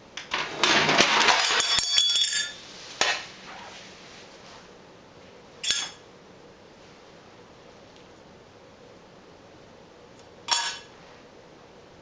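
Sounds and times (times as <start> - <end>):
rustling and clinking clatter: 0.3 - 3.2.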